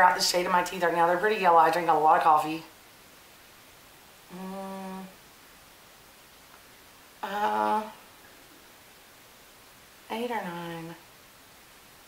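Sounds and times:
woman humming: 4.3 - 5.2, 7.2 - 8.0.

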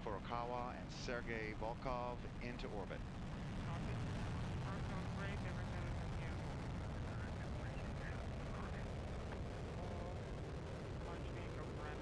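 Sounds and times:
faint voices: 0.0 - 12.0
rocket engines rumbling: 0.0 - 12.0.

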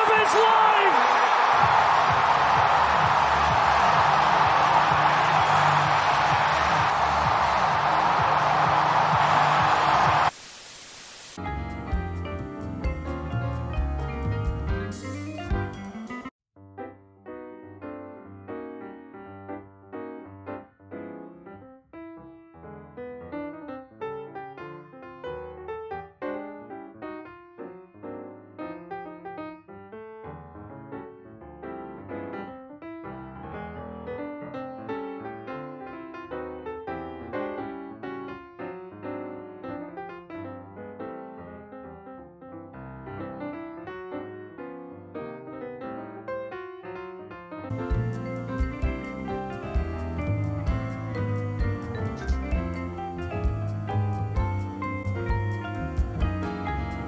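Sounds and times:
piano music: 0.0 - 10.3, 11.4 - 57.0.

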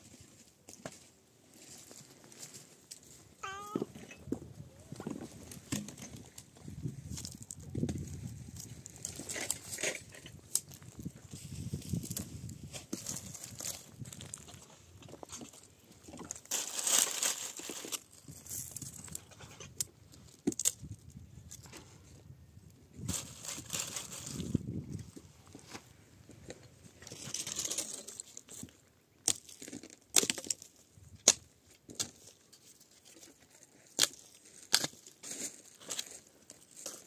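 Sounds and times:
footsteps on stony ground: 0.0 - 16.9, 33.2 - 37.0
short high-pitched call: 3.4 - 3.9
twigs snapping and rustling: 20.4 - 21.6, 29.2 - 32.4, 33.8 - 35.1.

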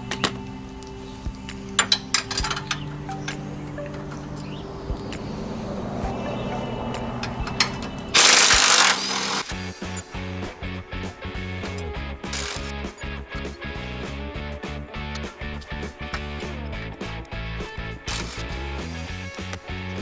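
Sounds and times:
hand tools clinking: 0.0 - 5.3, 6.2 - 10.2
background music: 0.0 - 20.0
impact wrench burst: 7.4 - 10.0, 12.2 - 12.8, 18.0 - 18.9.

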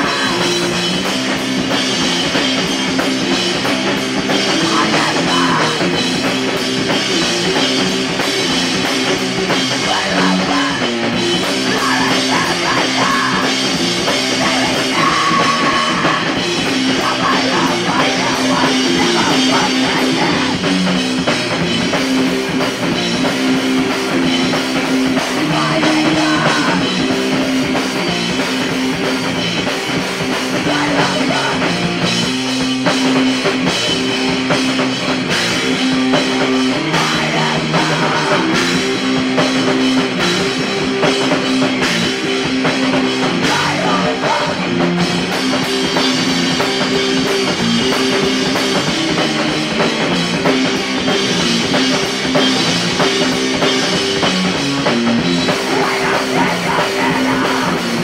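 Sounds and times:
drum kit: 0.0 - 58.0
electric guitar riff: 0.0 - 58.0.

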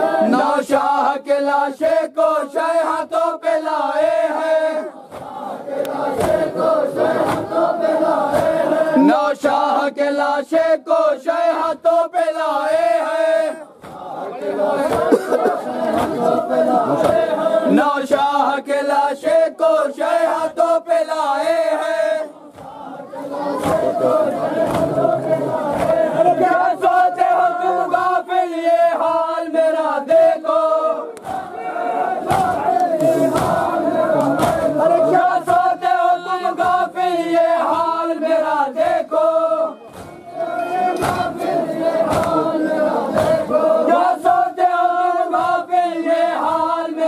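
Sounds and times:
men chanting a lament: 0.0 - 47.0
crowd voices: 3.7 - 9.7, 13.1 - 18.4, 19.0 - 47.0.

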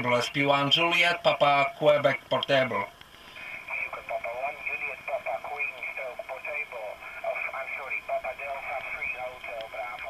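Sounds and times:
steady high-pitched hiss: 0.0 - 10.0
thin radio voice: 3.4 - 10.0.

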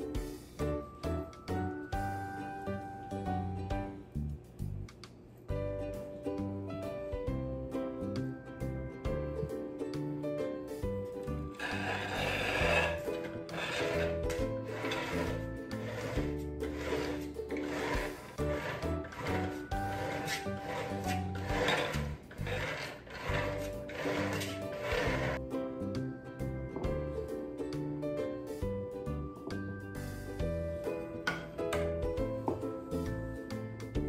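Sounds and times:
spatula scraping frosting on cake: 11.5 - 25.4
background music with bass line: 23.4 - 34.0.

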